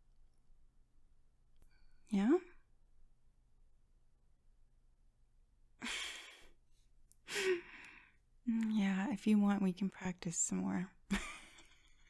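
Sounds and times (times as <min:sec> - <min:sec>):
woman sighing: 0:05.8 - 0:06.5, 0:07.3 - 0:08.2
woman breathing: 0:05.8 - 0:08.3.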